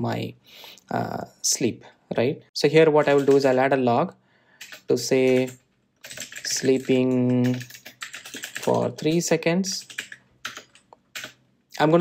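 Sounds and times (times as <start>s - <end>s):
keyboard keystrokes: 4.6s - 9.2s.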